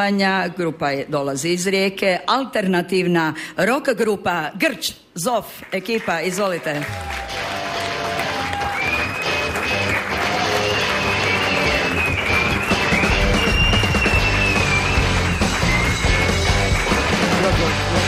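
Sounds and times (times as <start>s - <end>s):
band backing music: 6.9s - 18.0s.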